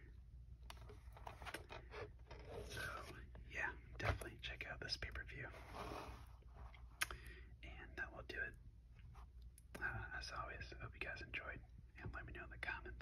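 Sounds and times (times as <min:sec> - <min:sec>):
plastic case handling: 0:00.7 - 0:03.2
person whispering: 0:02.6 - 0:05.8, 0:07.6 - 0:08.6, 0:09.7 - 0:13.0.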